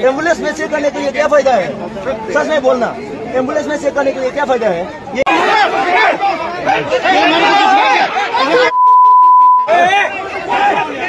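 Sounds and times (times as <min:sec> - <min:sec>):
men talking over one another: 0:00.0 - 0:08.7, 0:09.6 - 0:11.0.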